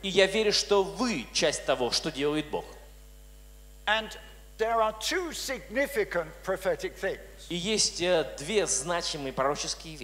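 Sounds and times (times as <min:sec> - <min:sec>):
man speaking into a microphone: 0:00.0 - 0:02.9, 0:03.9 - 0:10.0
faint steady hum: 0:00.0 - 0:10.0.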